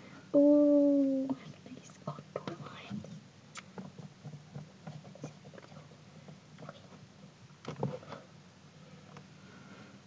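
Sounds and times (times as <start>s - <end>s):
low steady hum: 0.0s - 10.0s
faint whispering: 0.4s - 3.1s.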